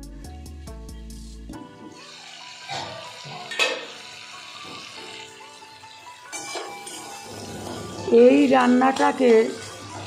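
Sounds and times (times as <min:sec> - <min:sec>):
vegetables sizzling in hot oil: 0:00.6 - 0:10.0
metal lid clank: 0:02.7 - 0:03.9.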